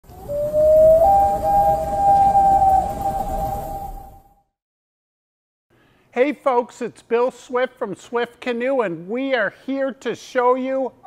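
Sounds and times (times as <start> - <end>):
rising synth tone: 0.0 - 4.4.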